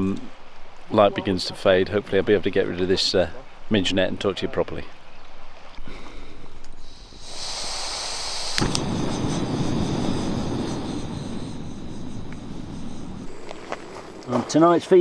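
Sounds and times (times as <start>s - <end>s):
gas hissing: 6.3s - 14.3s
burning flame rushing: 6.8s - 14.3s
burner lighting pop: 8.5s - 9.4s.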